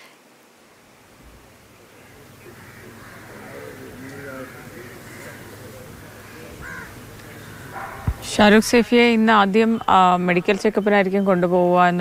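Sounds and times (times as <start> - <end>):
faint steady hiss: 0.0 - 12.0
bird harsh call: 1.9 - 8.4.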